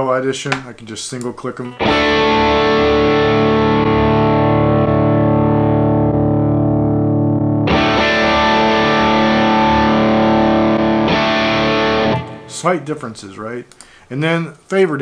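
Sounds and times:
distorted electric guitar chord: 0:01.7 - 0:12.8.

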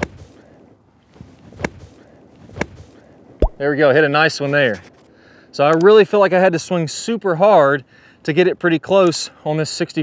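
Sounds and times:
golf club thumping into sand: 0:01.5 - 0:03.6.

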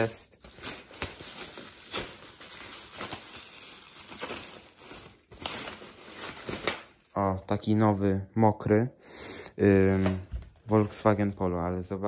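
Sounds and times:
plastic bag rustling and crinkling: 0:00.0 - 0:07.3, 0:09.8 - 0:11.6.

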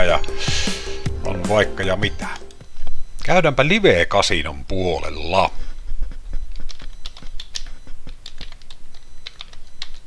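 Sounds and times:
keyboard keystroke clicks: 0:06.6 - 0:10.0.

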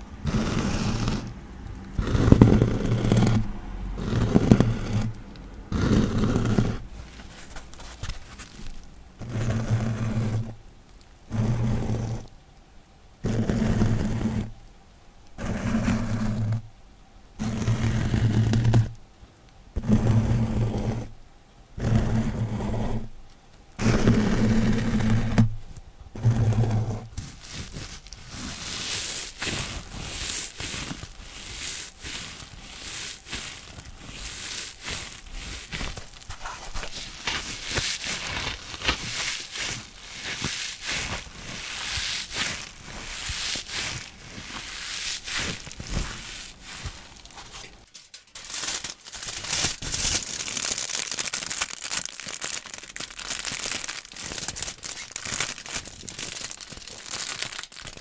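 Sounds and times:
sponge scraping close to microphone: 0:00.0 - 0:10.6, 0:11.3 - 0:12.3, 0:13.2 - 0:14.6, 0:15.4 - 0:16.6, 0:17.4 - 0:18.9, 0:19.8 - 0:21.1, 0:21.8 - 0:23.1, 0:23.8 - 0:25.6, 0:26.2 - 0:50.9
wrapping crumpled against microphone: 0:06.4 - 0:11.6, 0:27.0 - 0:58.0.

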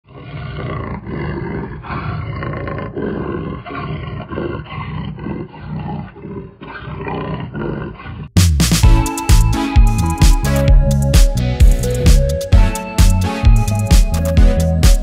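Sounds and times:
big cat growling: 0:00.1 - 0:08.4.

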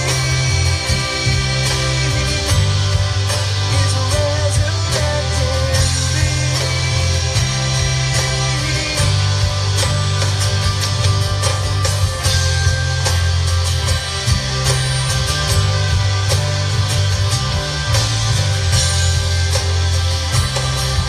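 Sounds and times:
live band playing worship song: 0:00.0 - 0:21.0.

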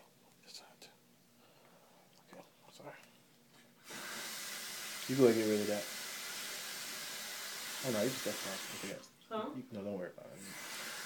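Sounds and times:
steady hiss: 0:03.8 - 0:09.2, 0:10.2 - 0:11.0.

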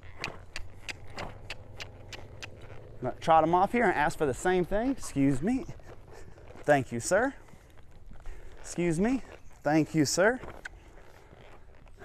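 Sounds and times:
low steady rumble: 0:00.0 - 0:09.4
horse hooves and tack clicking: 0:00.0 - 0:12.0.

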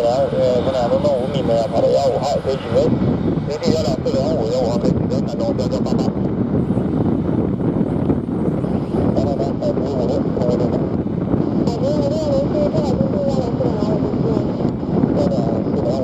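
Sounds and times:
jet engines roaring: 0:00.0 - 0:16.0.

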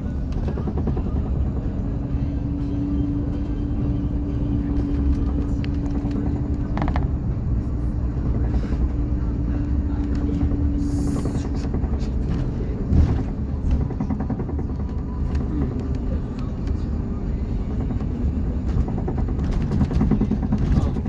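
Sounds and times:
steady hum: 0:00.0 - 0:21.0
vehicle rumble inside cabin: 0:00.0 - 0:21.0.

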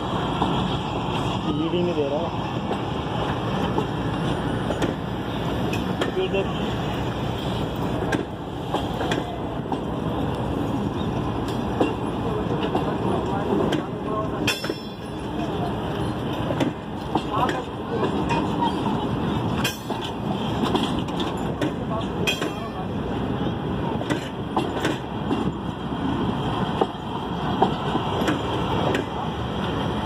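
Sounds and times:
train wheels rumbling on rails: 0:00.0 - 0:30.0.

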